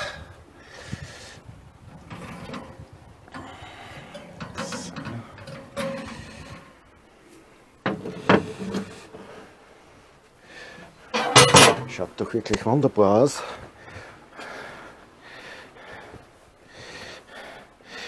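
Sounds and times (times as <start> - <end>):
baking dish scraping in oven: 4.1 - 6.7.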